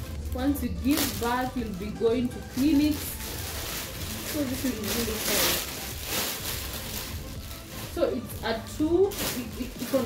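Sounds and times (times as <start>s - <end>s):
fabric bag rustling: 0.0s - 10.0s
plastic wrapping crinkling: 0.0s - 10.0s
soft background music: 0.0s - 10.0s.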